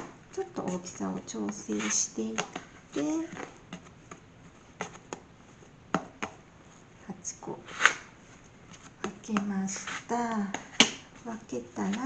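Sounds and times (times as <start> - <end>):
hands tapping dough: 0.0 - 5.3, 5.9 - 6.4, 9.0 - 12.0.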